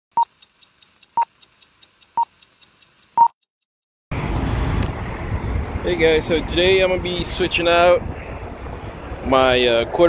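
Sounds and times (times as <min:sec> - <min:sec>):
faint fast ticking: 0:00.1 - 0:03.4.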